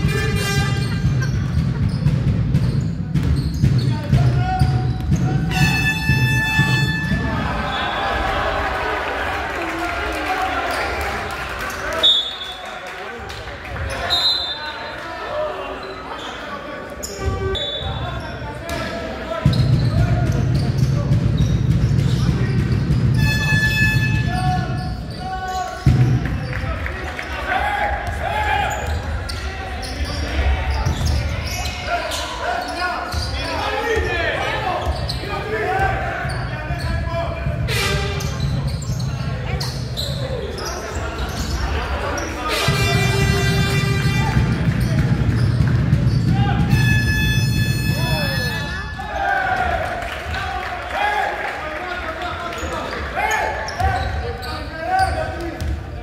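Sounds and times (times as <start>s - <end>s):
shouts and talk of people: 3.0s - 56.0s.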